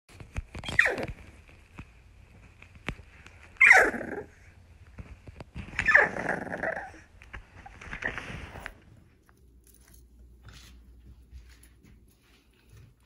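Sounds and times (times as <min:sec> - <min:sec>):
puppy growling whiny: 0:00.6 - 0:01.2, 0:03.6 - 0:04.5, 0:05.8 - 0:07.1.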